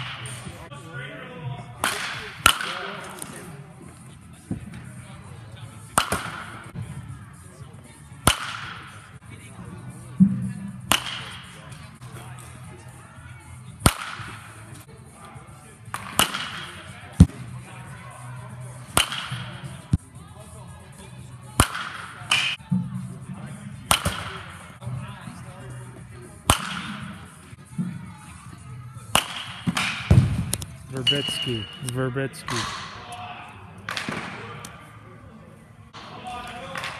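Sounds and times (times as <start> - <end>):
baseball bat cracking balls: 23.9 - 24.4.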